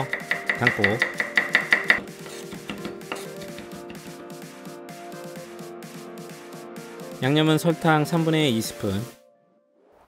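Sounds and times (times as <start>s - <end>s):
knife tapping cutting board: 0.0s - 4.2s
background music: 0.0s - 10.0s.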